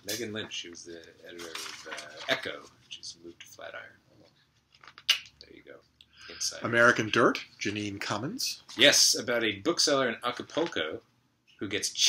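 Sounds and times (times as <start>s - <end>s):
paper rustle: 1.3s - 2.7s.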